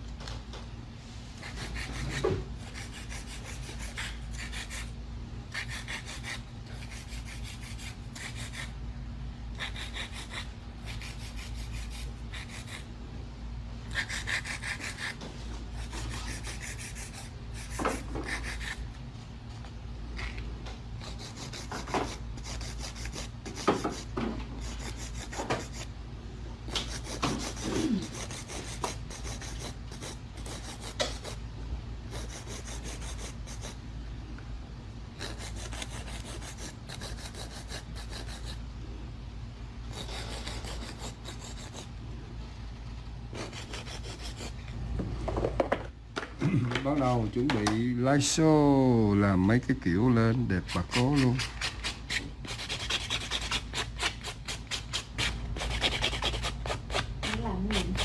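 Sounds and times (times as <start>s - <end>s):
nail file rasping: 1.4s - 4.9s, 5.5s - 8.8s, 9.5s - 12.9s, 13.9s - 18.8s, 21.0s - 25.9s, 26.7s - 31.4s, 32.1s - 33.8s, 35.2s - 38.6s, 39.9s - 41.9s, 43.4s - 44.6s, 50.7s - 58.0s.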